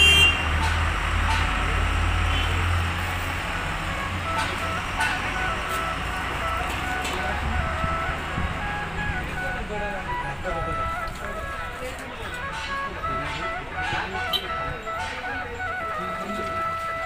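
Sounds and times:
vehicle engine rumbling: 0.0s - 17.0s.

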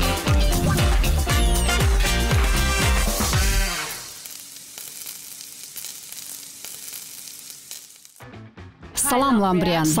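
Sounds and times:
oil sizzling in a frying pan: 2.0s - 8.2s.

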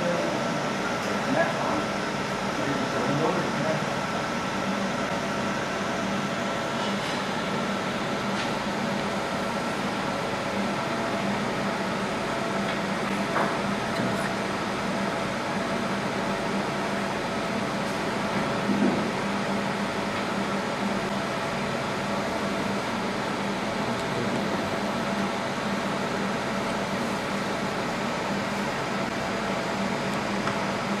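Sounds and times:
laser machine fan hum: 0.0s - 31.0s.

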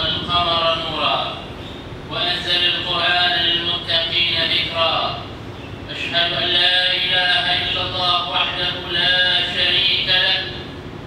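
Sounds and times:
man chanting melodically: 0.0s - 1.5s, 2.1s - 5.3s, 5.9s - 10.8s.

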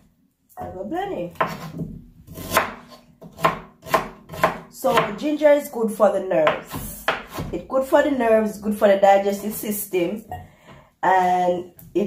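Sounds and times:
knife chopping on cutting board: 1.3s - 5.2s, 6.4s - 7.6s.

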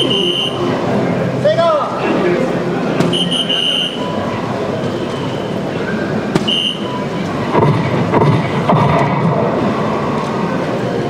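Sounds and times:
hall noise: 0.0s - 11.0s.

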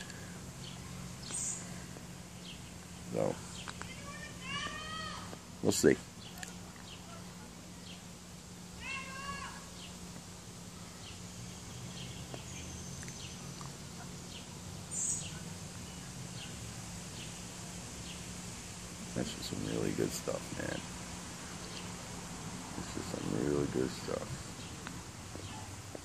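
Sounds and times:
faint bird chirps: 0.0s - 5.2s, 10.7s - 18.4s
steady low hum: 0.0s - 26.0s.

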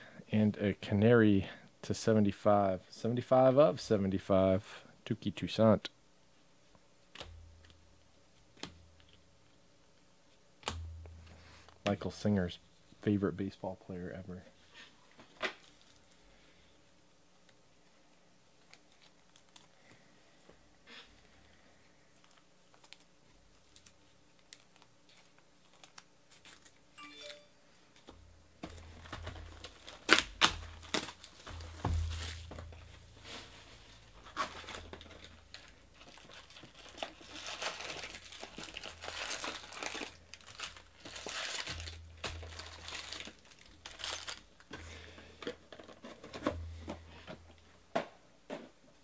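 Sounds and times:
foil packs crinkling: 22.2s - 26.9s, 28.7s - 44.8s.

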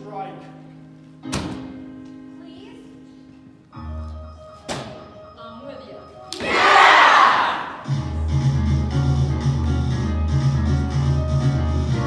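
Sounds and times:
group of voices cheering: 6.4s - 7.9s
music with steady bass line: 7.9s - 12.0s.

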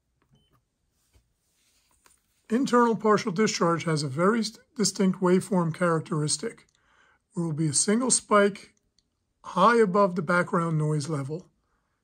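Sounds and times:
short faint beep: 0.3s - 0.6s.

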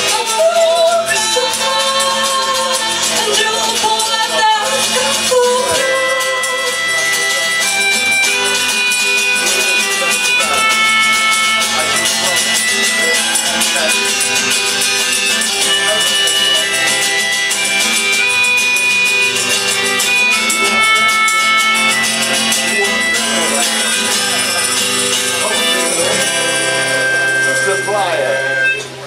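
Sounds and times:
acoustic guitar strumming: 0.0s - 29.0s
fiddle playing held notes: 0.0s - 29.0s.

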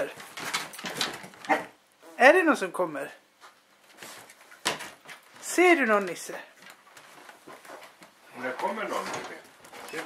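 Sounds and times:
dogs scrambling: 0.0s - 1.8s.

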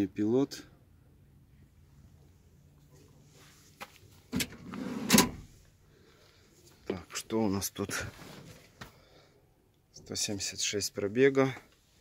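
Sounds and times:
shuffling rustle: 2.8s - 4.3s, 7.8s - 9.0s.

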